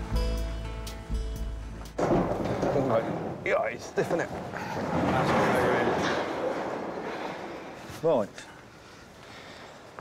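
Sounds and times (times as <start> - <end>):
metal sliding door rolling: 2.0 - 7.8.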